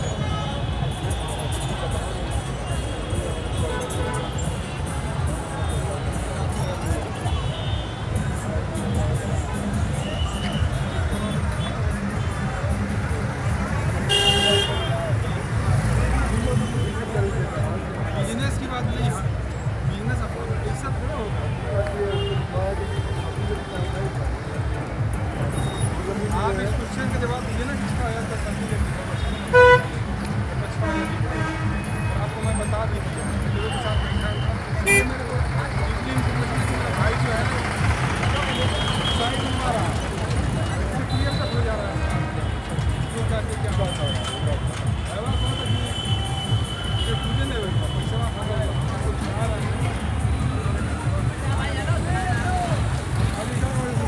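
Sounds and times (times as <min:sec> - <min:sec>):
people's voices: 0:00.0 - 0:54.0
road traffic rumble: 0:00.0 - 0:54.0
vehicle horn honking: 0:14.1 - 0:15.0, 0:29.2 - 0:30.0, 0:34.8 - 0:35.1.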